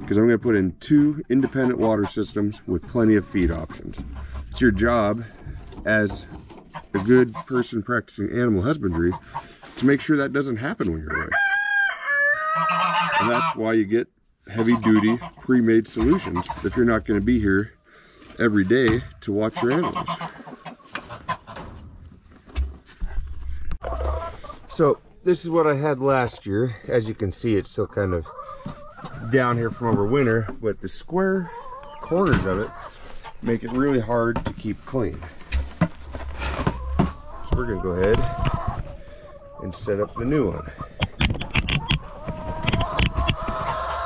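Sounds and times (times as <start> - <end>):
chickens clucking: 0.0 - 44.0
poultry calling: 1.2 - 5.5, 8.6 - 9.7, 11.0 - 13.6, 14.4 - 18.6, 19.4 - 21.8, 23.8 - 24.9, 28.0 - 30.4, 31.2 - 34.2, 35.2 - 44.0.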